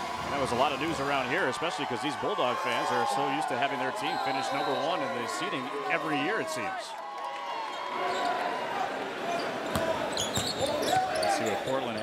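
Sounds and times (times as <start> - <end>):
arena crowd voices: 0.0 - 12.0.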